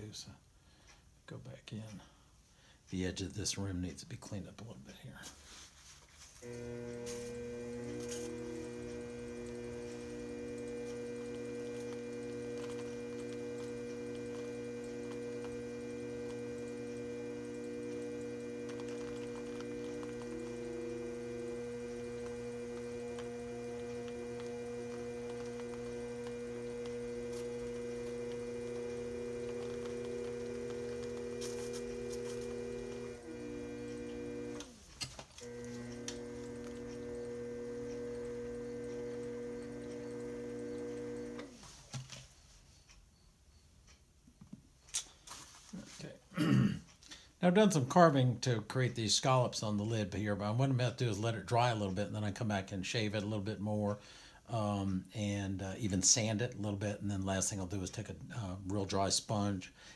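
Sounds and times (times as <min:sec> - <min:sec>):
potter's wheel motor whining: 0:06.4 - 0:41.6.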